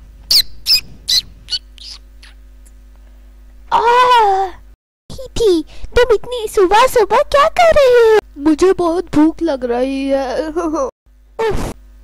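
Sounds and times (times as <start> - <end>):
bird chirping: 0.3 - 2.4.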